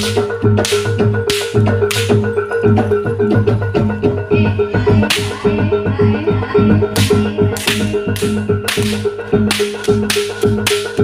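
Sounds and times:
drums: 0:00.0 - 0:11.0
gamelan music: 0:00.0 - 0:11.0.

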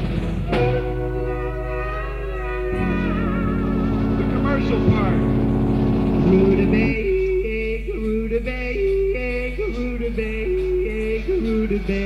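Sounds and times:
live rock band music: 0:00.0 - 0:07.0
steady low hum: 0:00.0 - 0:12.0.

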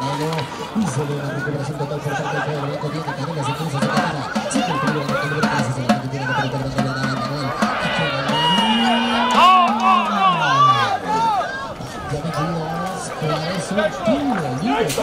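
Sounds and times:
spectators shouting: 0:03.4 - 0:15.0
long held rising call: 0:06.1 - 0:11.2.

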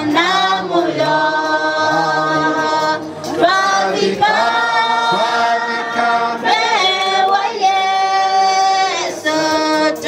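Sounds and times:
group singing unaccompanied: 0:00.0 - 0:10.0.

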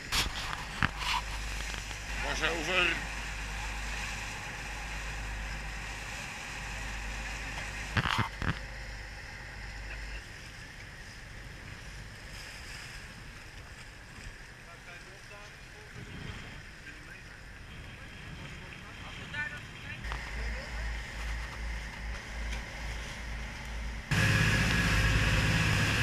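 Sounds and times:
boat engines rumbling: 0:00.0 - 0:26.0
water noise: 0:00.0 - 0:26.0
wind: 0:00.0 - 0:26.0.

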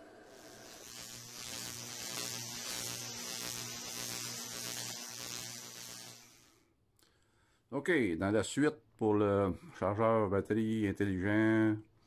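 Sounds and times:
steady hiss: 0:00.0 - 0:06.7.

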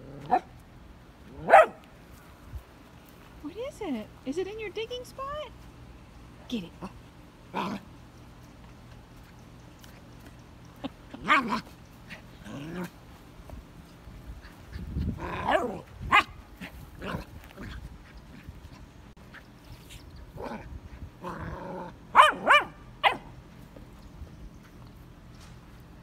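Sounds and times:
puppy barking: 0:00.3 - 0:00.5, 0:01.4 - 0:01.8, 0:15.4 - 0:16.4, 0:22.1 - 0:23.3.

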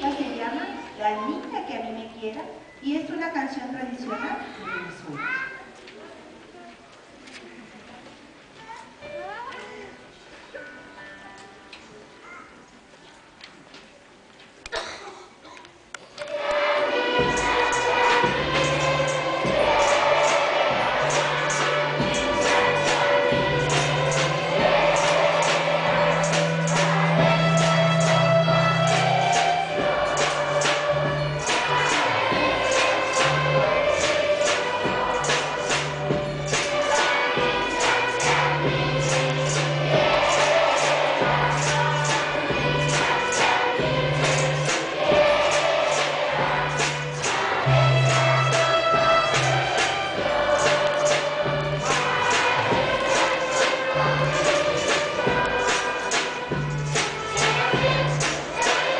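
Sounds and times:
children's choir singing: 0:00.0 - 0:01.9, 0:16.2 - 0:58.9
music with held notes: 0:16.2 - 0:58.9
string orchestra: 0:16.2 - 0:58.9
drums and hand percussion: 0:16.3 - 0:58.9
regular beat: 0:16.3 - 0:58.9.

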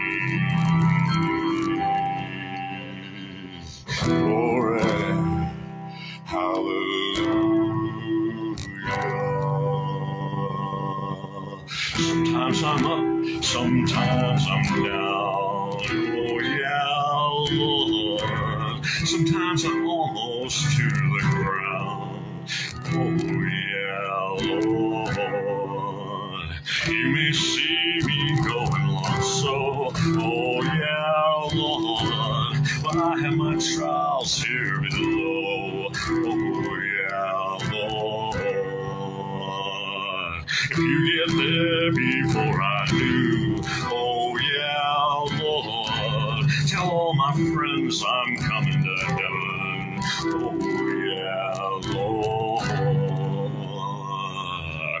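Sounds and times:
guitar accompaniment: 0:00.0 - 0:55.0
man singing: 0:00.0 - 0:55.0.

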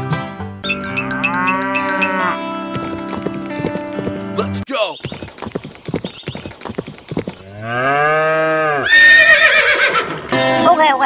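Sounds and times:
cow mooing: 0:00.9 - 0:03.4, 0:07.4 - 0:09.1.

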